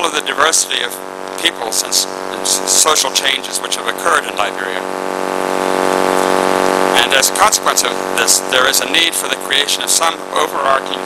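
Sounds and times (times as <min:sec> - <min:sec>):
loud droning hum: 0:00.0 - 0:11.0.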